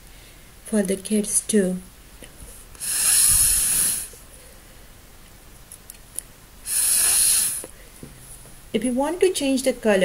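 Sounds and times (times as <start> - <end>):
breath blown through a straw: 2.8 - 4.2, 6.6 - 7.7.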